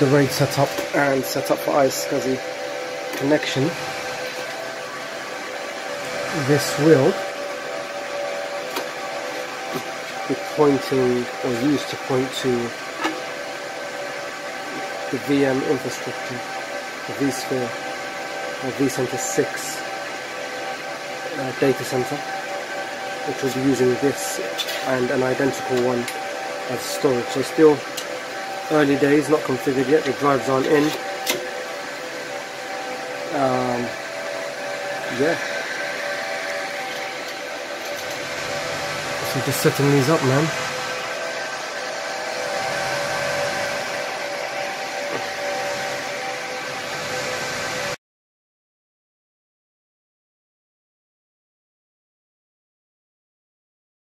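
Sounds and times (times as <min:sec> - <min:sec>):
server cooling fans running: 0:00.0 - 0:48.0.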